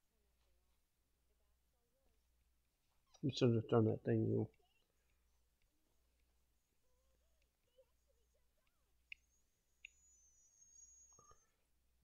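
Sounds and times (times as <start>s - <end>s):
faint clicks: 8.6s - 10.1s.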